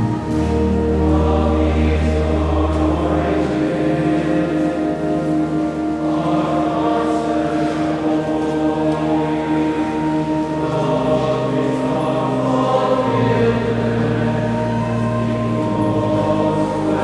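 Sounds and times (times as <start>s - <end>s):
choir singing a hymn: 0.0s - 17.0s
organ accompaniment: 0.0s - 17.0s.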